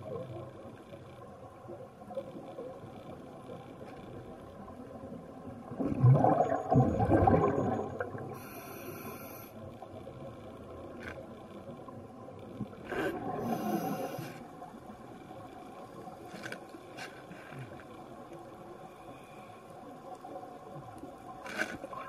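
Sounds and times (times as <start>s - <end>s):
low underwater hiss: 0.0s - 22.0s
underwater exhale bubbling: 5.7s - 9.2s, 12.9s - 14.4s.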